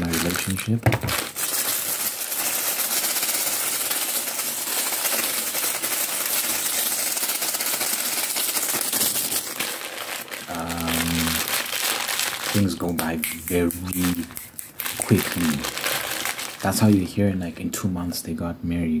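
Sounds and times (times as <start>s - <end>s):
plastic bags crinkling: 0.0s - 17.2s.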